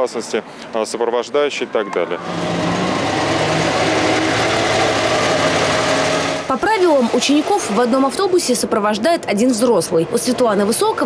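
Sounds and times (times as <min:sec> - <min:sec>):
bus engine droning steadily: 0:02.2 - 0:11.0.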